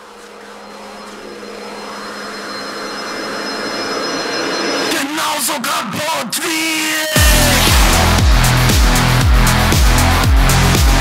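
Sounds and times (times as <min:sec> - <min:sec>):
electronic noise riser: 0:00.0 - 0:05.7.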